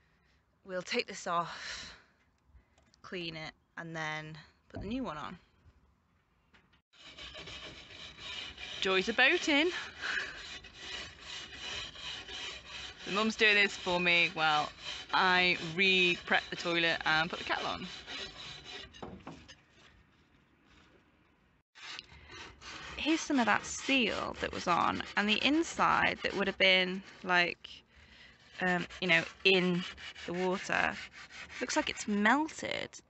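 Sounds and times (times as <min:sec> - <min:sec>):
metal scraper scraping steel: 0:07.0 - 0:20.2, 0:21.8 - 0:27.6, 0:28.4 - 0:32.1.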